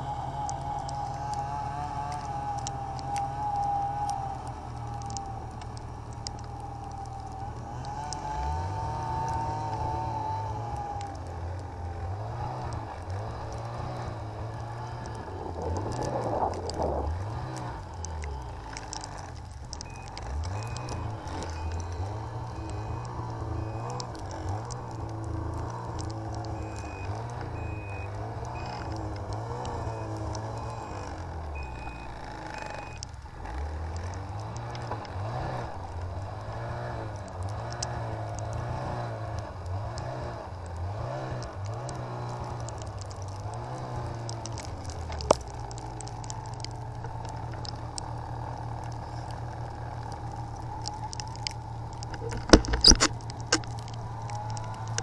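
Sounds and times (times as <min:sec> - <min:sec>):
snowmobile engine revving: 0:00.0 - 0:05.9, 0:07.6 - 0:19.3, 0:20.2 - 0:42.7
high electronic beep: 0:22.6 - 0:24.0, 0:26.6 - 0:28.9, 0:31.6 - 0:33.0
sharp click: 0:52.0 - 0:53.8.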